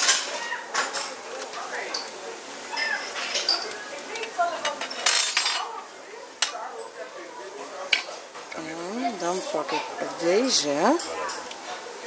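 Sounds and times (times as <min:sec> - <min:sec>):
metal tongs clinking on china bowls: 0:00.0 - 0:05.8, 0:10.4 - 0:11.6.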